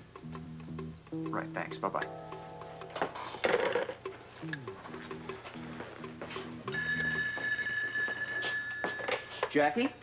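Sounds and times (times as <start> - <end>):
telephone ringing: 4.8 - 9.5.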